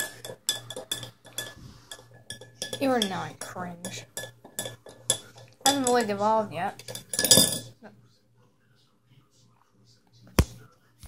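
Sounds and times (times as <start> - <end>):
spoon stirring and clinking in cup: 0.0 - 7.8.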